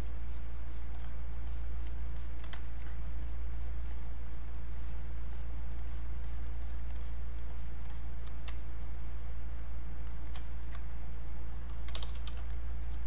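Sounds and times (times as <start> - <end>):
steady low hum: 0.0 - 13.0
computer mouse clicks and scratches: 0.7 - 4.0, 4.9 - 8.6, 10.0 - 10.8, 11.7 - 13.0.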